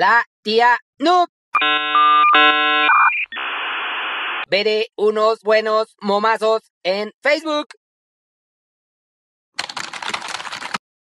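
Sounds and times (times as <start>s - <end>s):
dial-up modem tones: 1.6s - 4.4s.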